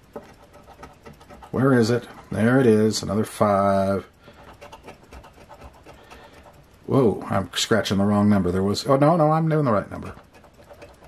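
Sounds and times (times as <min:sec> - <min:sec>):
scraper scratching lottery ticket: 0:00.0 - 0:11.0.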